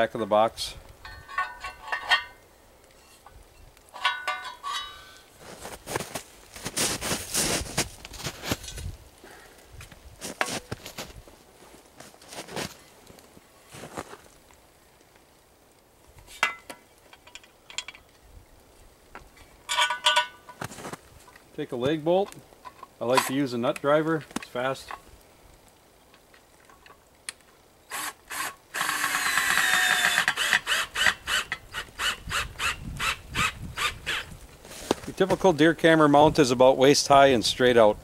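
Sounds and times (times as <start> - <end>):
metallic clinks and knocks: 1.0 - 2.4, 3.0 - 5.3, 16.4 - 18.1, 19.7 - 20.6
scuffing and rustling: 5.4 - 9.0, 9.8 - 14.6, 20.5 - 22.2, 34.5 - 35.6.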